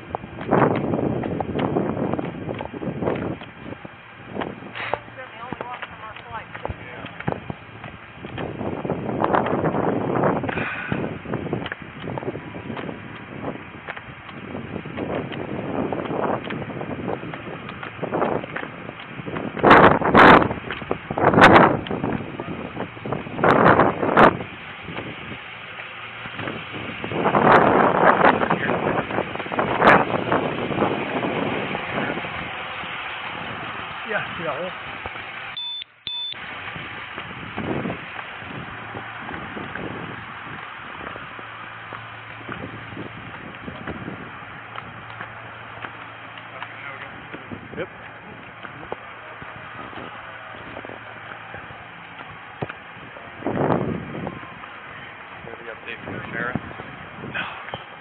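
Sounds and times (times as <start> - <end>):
street noise: 0.0 - 58.0
indistinct voices: 4.8 - 7.3.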